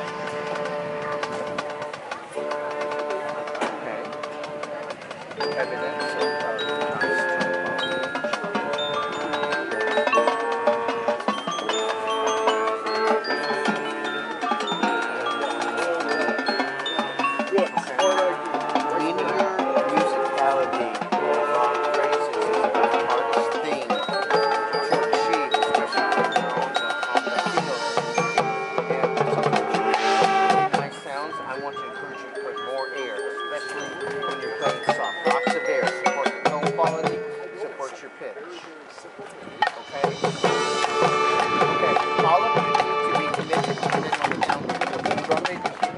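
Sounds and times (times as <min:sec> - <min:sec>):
mallet percussion: 0:00.0 - 0:45.9
marching band playing: 0:00.0 - 0:45.9.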